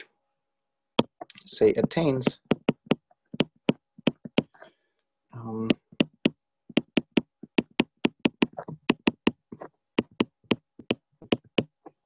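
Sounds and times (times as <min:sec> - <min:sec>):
stylus tapping on glass screen: 0:01.0 - 0:04.6, 0:05.6 - 0:12.0.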